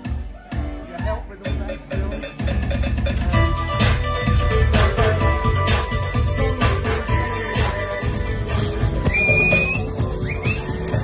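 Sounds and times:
electronic dance music: 0:00.0 - 0:11.0
high whistle tone: 0:09.0 - 0:11.0.

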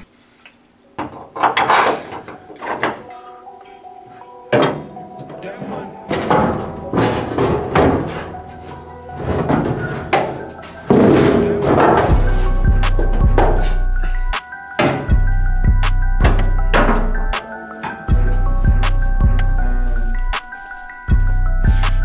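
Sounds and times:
background music: 0:00.0 - 0:22.0
metal knocks and clunks: 0:01.0 - 0:03.1, 0:04.5 - 0:13.8, 0:14.7 - 0:15.3, 0:16.2 - 0:18.2.

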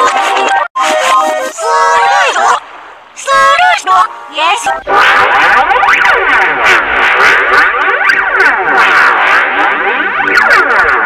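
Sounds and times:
overlapping sweeping tones: 0:03.2 - 0:11.0.

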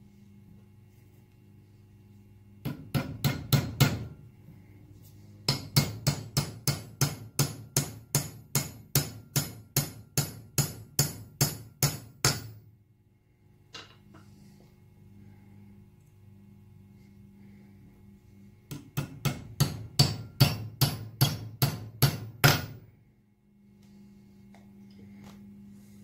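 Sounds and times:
hammer striking metal: 0:02.6 - 0:04.2, 0:05.5 - 0:12.6, 0:18.7 - 0:22.8.

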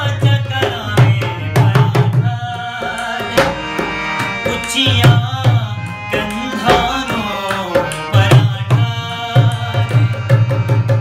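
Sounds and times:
person singing: 0:00.0 - 0:10.3
harmonium chords: 0:00.0 - 0:11.0.

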